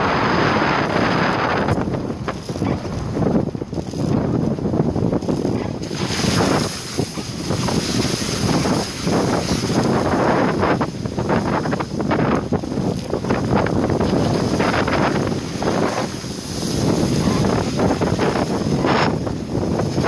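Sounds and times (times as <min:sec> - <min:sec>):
tyres rumbling on wet dirt road: 0:00.0 - 0:20.0
wind buffeting microphone: 0:00.0 - 0:20.0
short crackles and spatters: 0:00.1 - 0:20.0.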